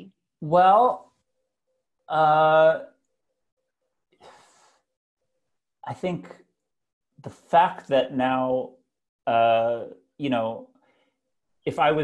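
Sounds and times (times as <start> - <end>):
man speaking: 0.0 - 1.2, 2.1 - 3.0, 5.8 - 6.5, 7.2 - 10.7, 11.7 - 12.0.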